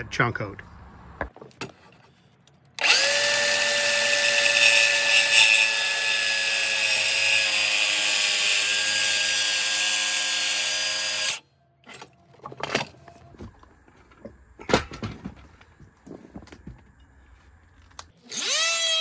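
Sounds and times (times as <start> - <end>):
circular saw cutting wood: 2.8 - 11.4.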